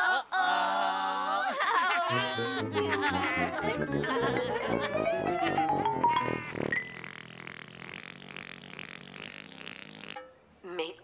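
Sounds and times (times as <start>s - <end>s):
children's tv theme music: 2.1s - 7.0s.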